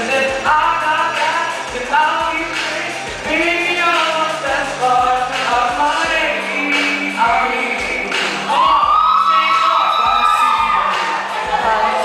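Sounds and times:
backing track with steady beat: 0.0 - 12.0
high singing voice: 0.0 - 12.0.

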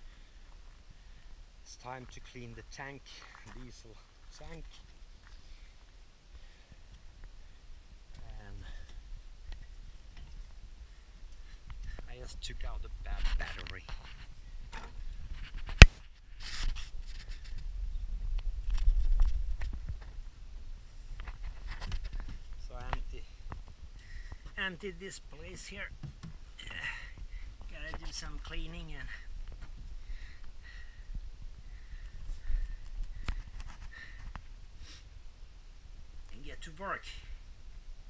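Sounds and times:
faint low rumble: 26.4 - 36.3.

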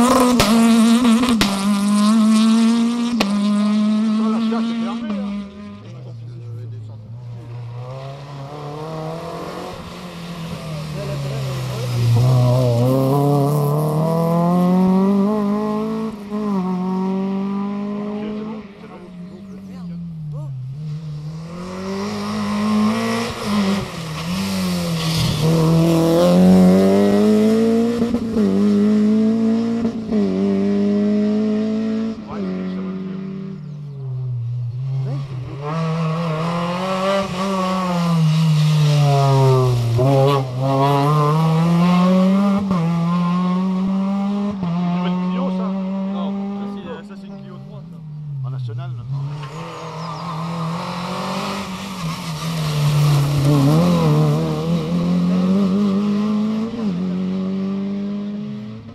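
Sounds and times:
rally cars accelerating past: 0.0 - 58.9.

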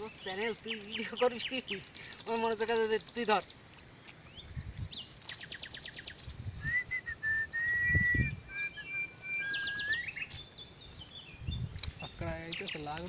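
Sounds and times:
birds chirping: 0.0 - 13.0
long whistled bird note: 6.6 - 10.2.

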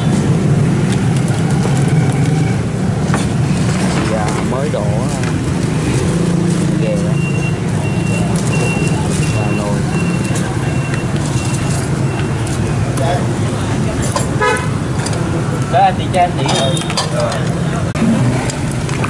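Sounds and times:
street traffic hum: 0.0 - 19.0
high electronic beeps: 7.0 - 12.4.

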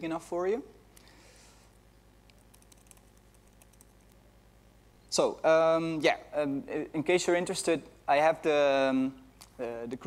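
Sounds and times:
faint keyboard typing: 2.2 - 4.2.

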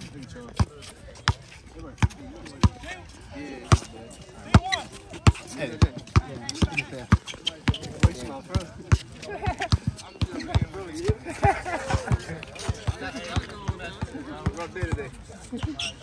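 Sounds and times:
voices chattering: 0.0 - 16.0
basketball bouncing on concrete: 4.5 - 11.2.

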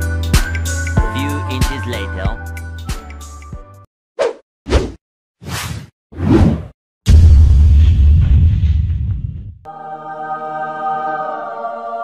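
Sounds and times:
deep rumbling hit: 7.1 - 9.6.

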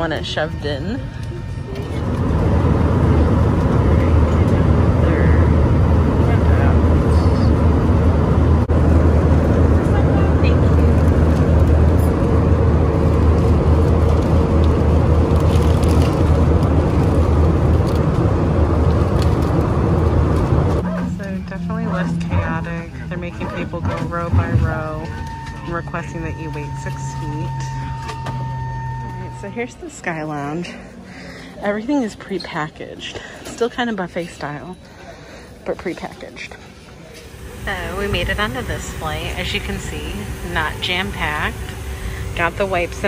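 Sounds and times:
jet cabin engine rumble: 0.0 - 43.0.

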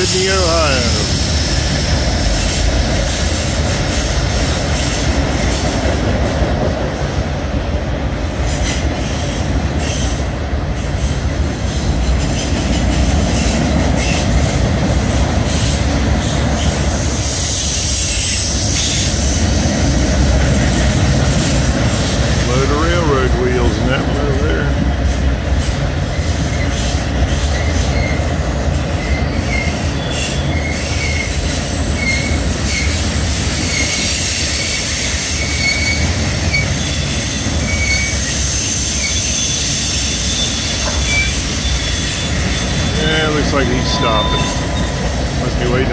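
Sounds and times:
freight train wheels rumbling: 0.0 - 45.9
high-pitched wheel squeals: 29.0 - 33.0, 33.6 - 45.9.

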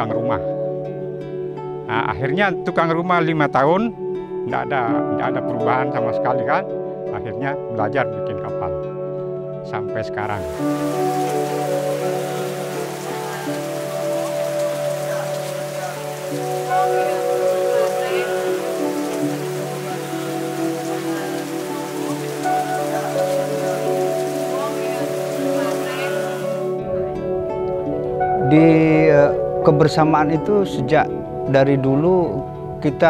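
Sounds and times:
soft background music: 0.0 - 33.0
heavy rain falling: 10.4 - 26.8.

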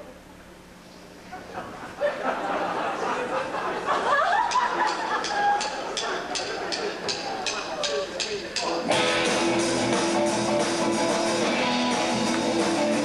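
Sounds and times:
drum kit ticking: 4.5 - 13.0
rock band playing: 8.8 - 13.0.

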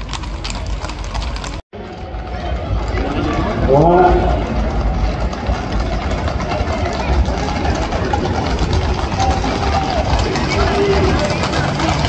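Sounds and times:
crowd voices: 0.0 - 12.0
horse hooves galloping on asphalt: 0.0 - 12.0.

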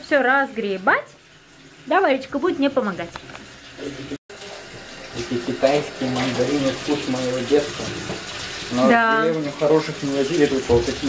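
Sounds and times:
water running from tap into sink: 0.0 - 11.0.

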